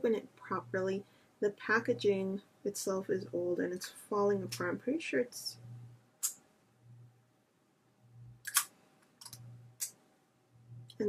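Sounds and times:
sharp plastic clicks: 0:08.4 - 0:10.0.

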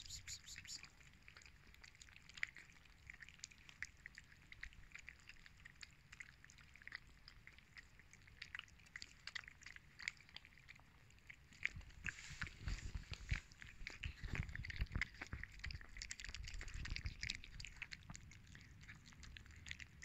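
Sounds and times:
cats chewing wet food: 0:00.0 - 0:20.0.

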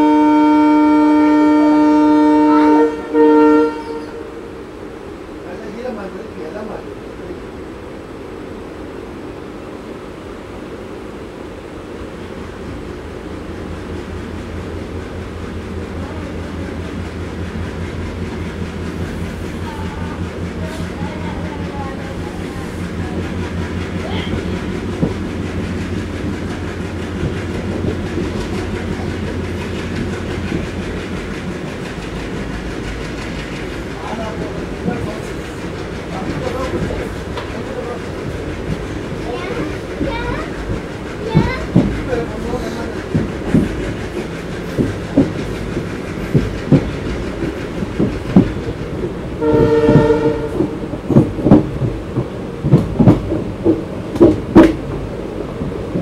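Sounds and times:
diesel locomotive engine drone: 0:00.0 - 0:56.0
train wheels on rails: 0:00.0 - 0:56.0.

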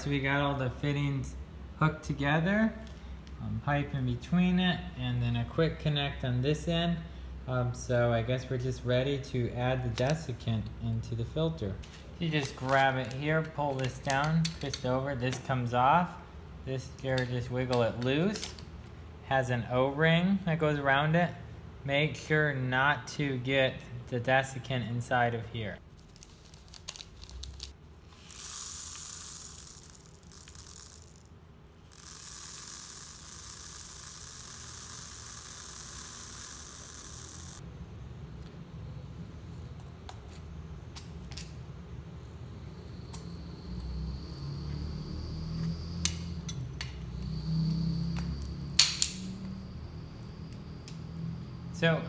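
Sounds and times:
beads pouring with hissing rattle: 0:12.0 - 0:13.3, 0:25.9 - 0:37.6.

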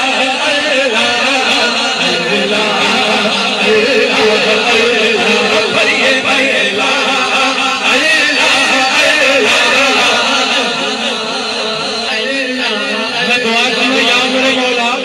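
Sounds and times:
man singing devotional song: 0:00.0 - 0:15.0
steady low drone: 0:02.0 - 0:08.1.

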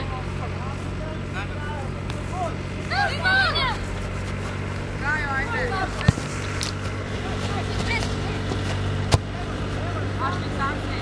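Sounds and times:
steady low hum: 0:00.0 - 0:11.0
ball being kicked: 0:05.7 - 0:09.5.

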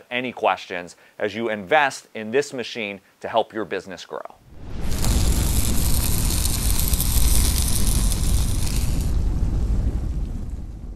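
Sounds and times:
deep rumble: 0:04.5 - 0:10.9
loud whoosh: 0:04.5 - 0:10.9.

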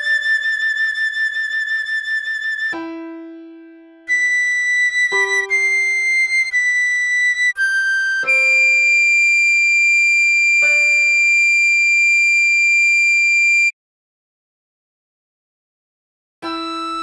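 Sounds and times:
soprano recorder melody: 0:00.0 - 0:03.1, 0:04.1 - 0:13.8, 0:16.4 - 0:17.0.

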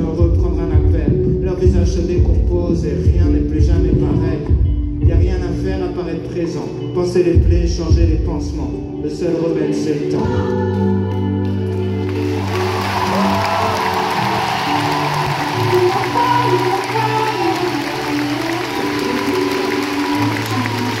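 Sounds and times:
live band sustained chords: 0:00.0 - 0:21.0
crowd cheering and applauding: 0:11.1 - 0:21.0.

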